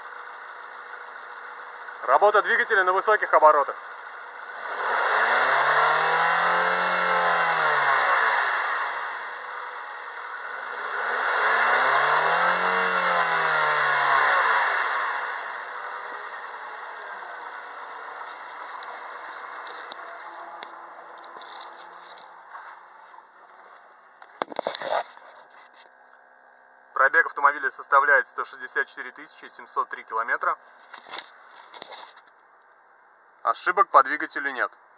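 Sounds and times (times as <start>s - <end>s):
car engine revving and idling: 0.0s - 23.8s.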